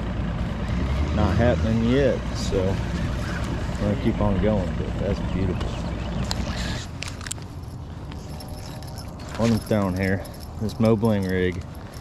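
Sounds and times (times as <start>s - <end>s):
small clicks of fishing tackle: 6.2s - 9.8s
light metallic clinking: 7.0s - 12.0s.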